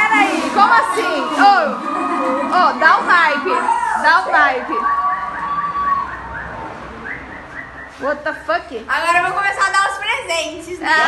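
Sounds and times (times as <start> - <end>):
steady high tone: 0.0 - 8.1
rising electronic alarm chirps: 2.8 - 8.1.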